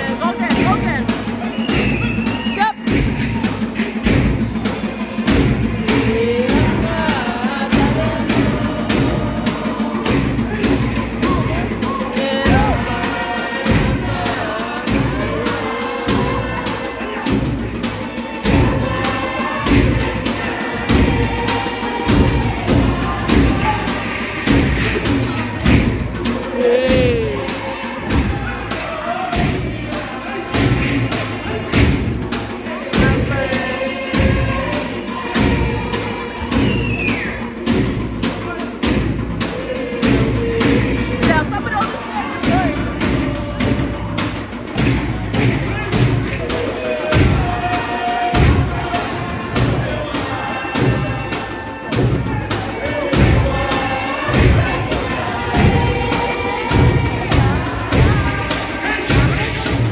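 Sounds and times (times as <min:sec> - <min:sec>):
heavy percussion thuds: 0:00.0 - 0:59.9
people singing: 0:00.0 - 0:59.9
voices: 0:00.0 - 0:59.9.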